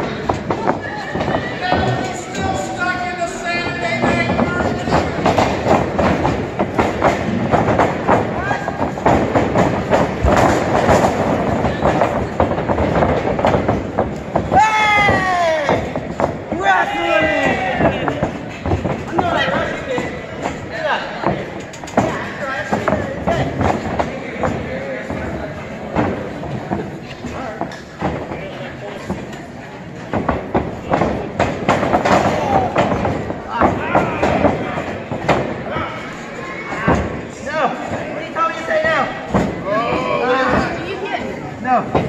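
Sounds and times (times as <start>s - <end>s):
people shouting: 14.5s - 18.2s.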